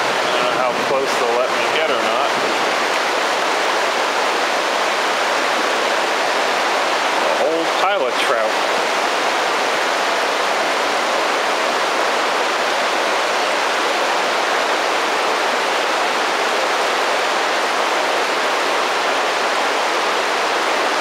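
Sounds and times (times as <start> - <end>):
river water rushing: 0.0 - 21.0.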